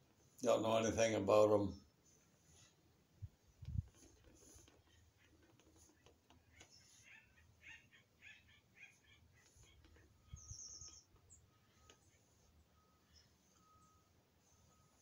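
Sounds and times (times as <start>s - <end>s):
faint bird chirps: 4.8s - 15.0s
high bird trill: 6.5s - 14.0s.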